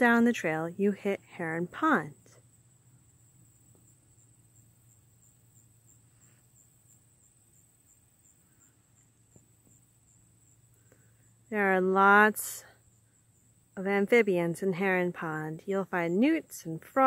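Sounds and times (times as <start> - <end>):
high-pitched insect trill: 1.8 - 14.4.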